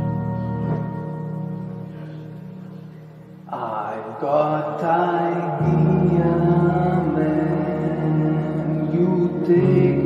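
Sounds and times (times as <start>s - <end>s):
digital keyboard chords: 0.0s - 10.0s.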